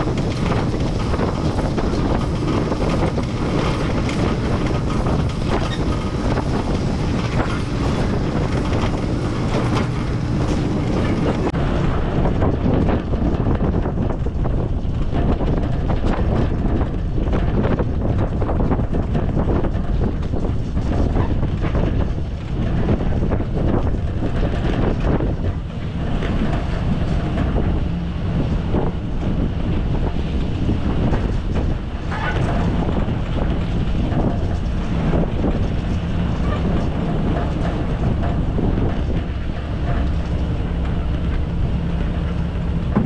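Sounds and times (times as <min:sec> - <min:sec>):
small rattles and knocks: 0:00.0 - 0:11.6, 0:12.5 - 0:43.0.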